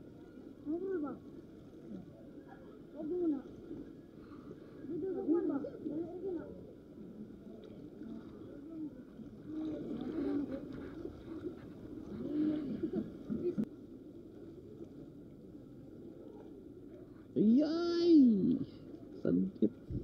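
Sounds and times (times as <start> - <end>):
faint indistinct voices: 0.0 - 20.0
low background noise: 0.0 - 20.0.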